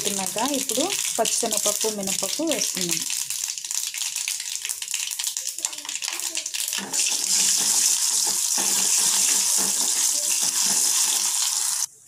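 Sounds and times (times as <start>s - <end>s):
mustard seeds spluttering: 0.0s - 11.8s
hot oil sizzling: 0.0s - 12.0s.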